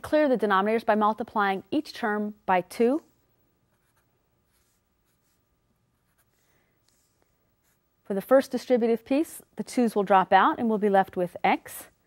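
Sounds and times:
marker writing on paper: 3.8 - 7.8.

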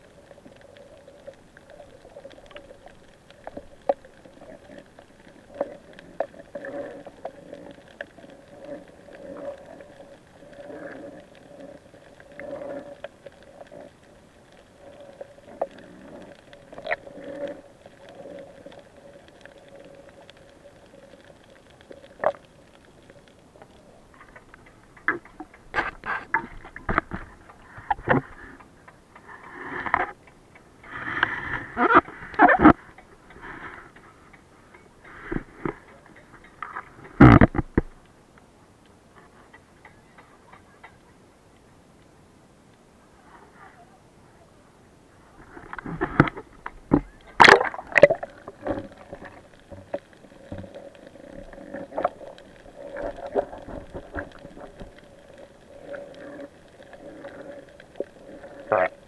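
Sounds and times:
muffled underwater hum: 0.0 - 38.0
water splashes: 45.2 - 59.0.

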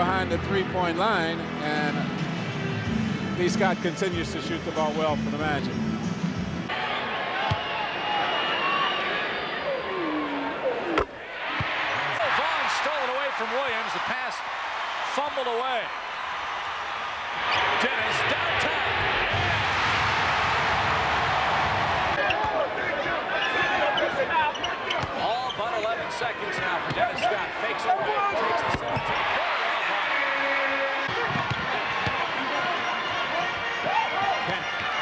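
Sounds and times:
crowd cheering: 6.7 - 35.0
crowd murmur: 8.2 - 12.6
sneakers squeaking: 22.2 - 22.6, 23.4 - 25.9, 26.8 - 27.5.

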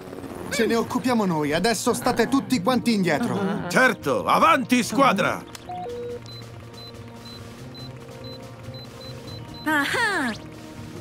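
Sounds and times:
background music: 0.0 - 11.0
scanner beeping: 5.7 - 9.8.

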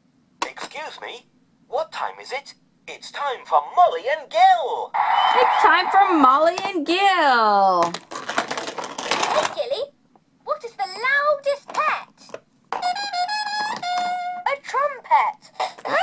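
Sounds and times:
recorded character voices from toy: 0.4 - 4.9, 9.3 - 9.9, 10.5 - 12.4, 14.5 - 16.0
noisy burst: 4.9 - 6.4.

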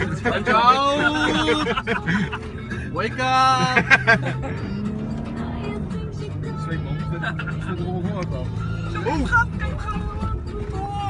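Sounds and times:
car engine running: 0.0 - 11.0
music playing: 0.0 - 11.0.

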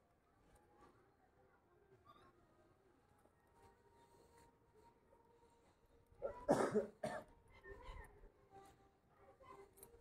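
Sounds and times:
person coughing: 6.3 - 7.3.

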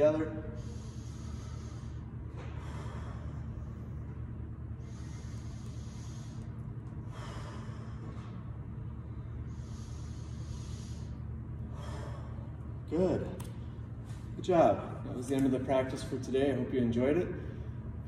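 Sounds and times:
man breathing deeply: 0.0 - 12.9
steady low hum: 0.0 - 18.0.

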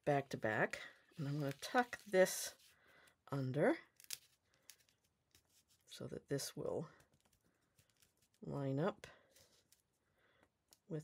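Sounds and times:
paper rustling: 1.1 - 2.7.

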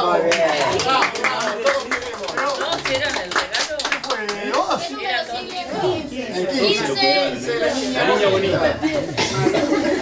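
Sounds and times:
people clapping: 0.0 - 5.0.

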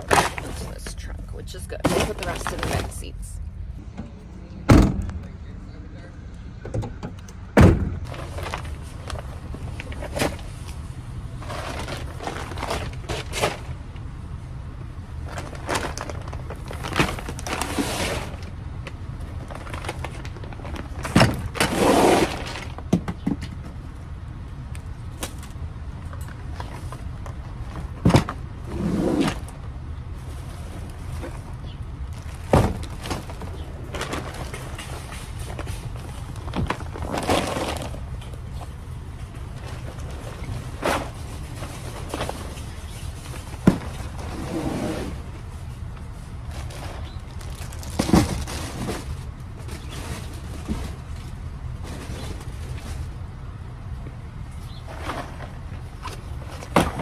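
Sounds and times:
grocery bags rustling: 0.0 - 3.4, 8.0 - 14.0, 15.0 - 22.9, 26.3 - 54.0
steady low rumble: 0.0 - 21.6
items knocking and thumping: 3.8 - 5.2, 6.6 - 10.5, 15.2 - 23.9, 25.2 - 28.6, 32.1 - 44.4, 54.9 - 57.0.

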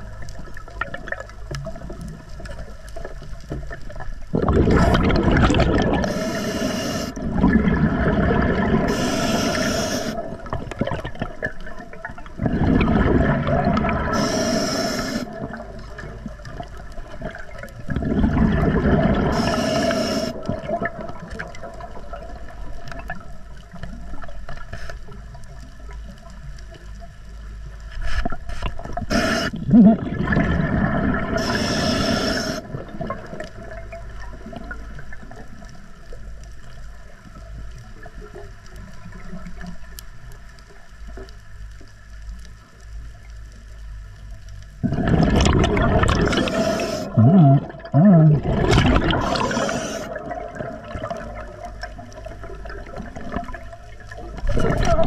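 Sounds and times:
low water noise: 0.0 - 55.0
rumbling exhaust bubbles: 4.3 - 6.2, 7.1 - 14.3, 15.3 - 19.5, 29.6 - 31.4, 44.8 - 55.0
diver breathing through regulator: 5.8 - 10.4, 13.6 - 15.5, 18.6 - 20.5, 28.5 - 29.8, 30.7 - 32.8, 46.1 - 50.4.

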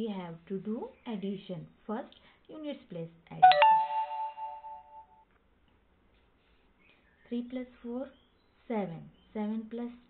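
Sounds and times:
doorbell chime: 3.4 - 5.1.

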